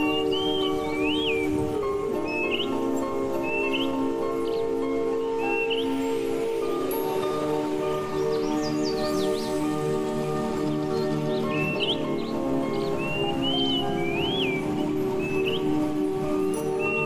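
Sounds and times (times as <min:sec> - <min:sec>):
calm instrumental music: 0:00.0 - 0:17.0.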